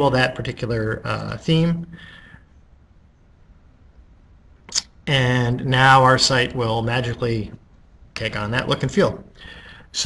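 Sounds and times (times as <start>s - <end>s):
sharp hissy click: 4.7s - 4.9s.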